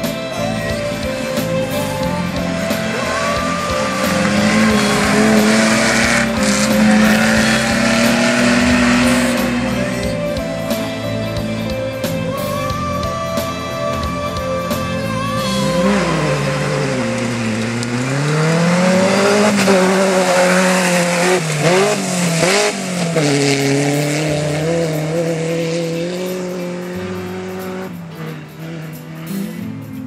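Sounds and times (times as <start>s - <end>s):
rally car engine revving: 0.0s - 30.0s.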